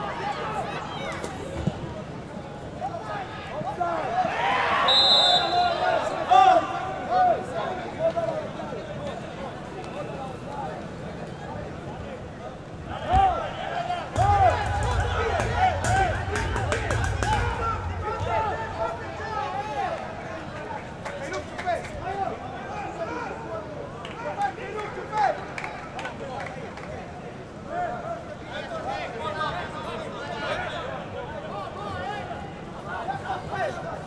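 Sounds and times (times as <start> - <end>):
players and spectators shouting: 2.8 - 8.0, 12.9 - 20.5.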